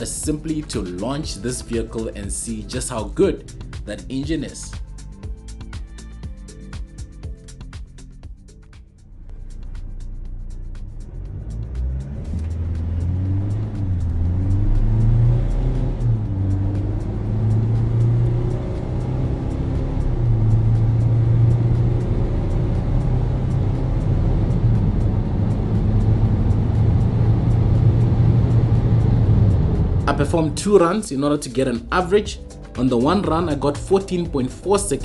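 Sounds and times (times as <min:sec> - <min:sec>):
background music with steady beat: 0:00.0 - 0:35.0
diesel engine accelerating hard: 0:09.0 - 0:31.8.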